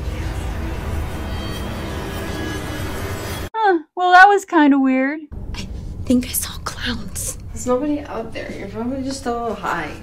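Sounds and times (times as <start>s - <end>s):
deep rumbling drone: 0.0s - 3.5s, 5.3s - 10.0s.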